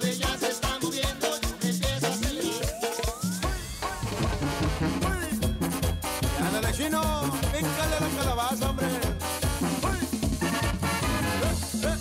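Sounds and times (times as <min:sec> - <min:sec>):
driving drum beat: 0:00.0 - 0:12.0
bass line: 0:01.8 - 0:12.0
clarinets and trumpets melody: 0:01.9 - 0:12.0.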